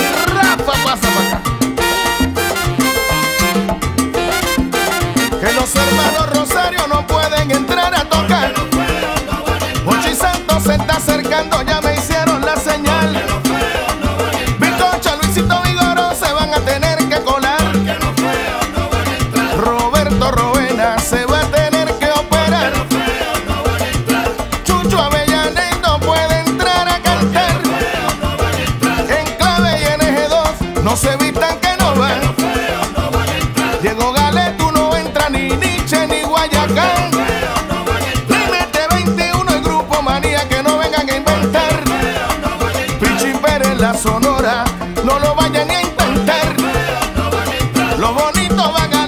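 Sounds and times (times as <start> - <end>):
repeating bass and percussion: 0.0 - 49.0
salsa band playing: 0.0 - 49.0.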